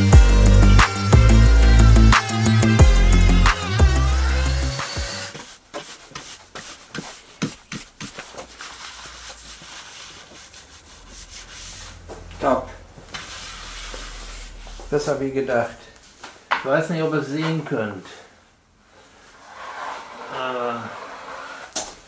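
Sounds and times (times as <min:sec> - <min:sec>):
background music: 0:00.0 - 0:05.3
hand brush sweeping wood chips: 0:05.3 - 0:12.1, 0:13.1 - 0:14.9.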